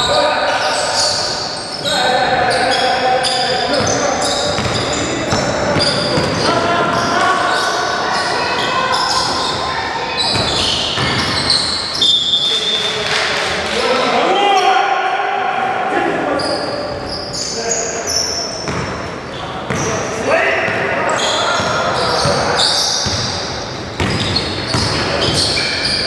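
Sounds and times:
basketball bouncing on wooden court: 3.7s - 7.1s, 10.2s - 11.6s, 18.6s - 19.0s, 21.6s - 23.4s, 24.0s - 25.7s.

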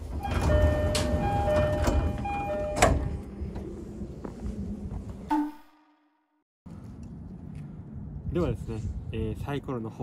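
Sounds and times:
steady low rumble: 6.7s - 10.0s.

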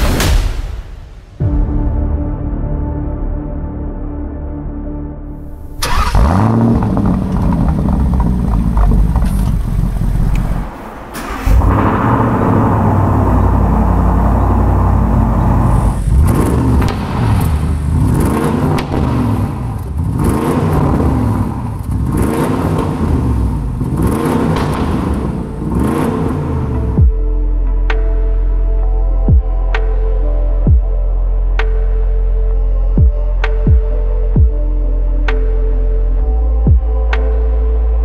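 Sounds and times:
car engine running: 5.4s - 27.2s
engine throttle blips: 5.5s - 27.1s.

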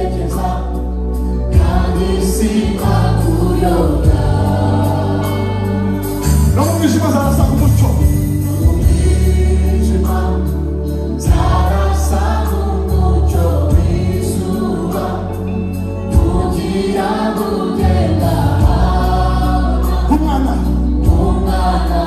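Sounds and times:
lead singer and choir singing: 0.0s - 22.0s.

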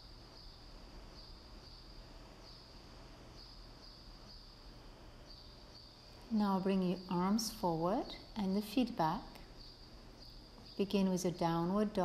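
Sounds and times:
cricket trill: 0.0s - 12.0s
low steady hum: 0.0s - 12.0s.

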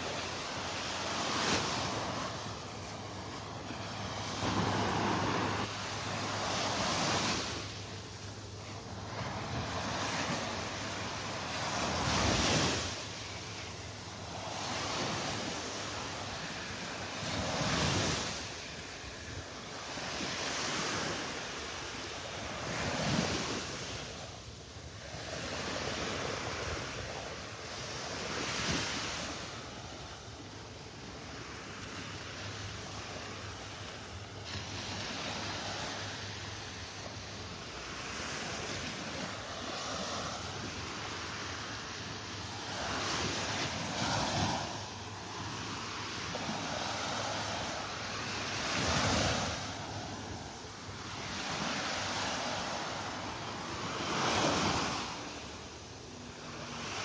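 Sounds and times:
waves breaking on sand: 0.0s - 57.0s.

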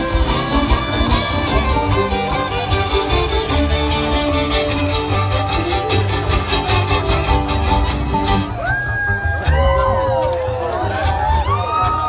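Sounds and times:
strummed acoustic guitar: 0.0s - 8.5s
fiddles bowing melody: 0.0s - 9.2s
banjo: 0.0s - 11.6s.

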